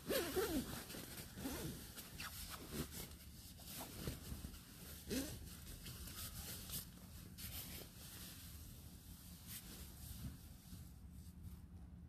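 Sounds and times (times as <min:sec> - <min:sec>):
sleeping bag zipper pulled: 0:00.0 - 0:02.9
nylon fabric rustling: 0:00.0 - 0:10.8.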